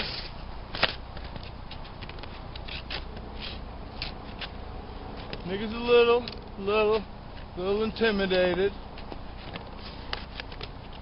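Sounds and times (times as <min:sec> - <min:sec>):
low steady rumble: 0:00.1 - 0:11.0.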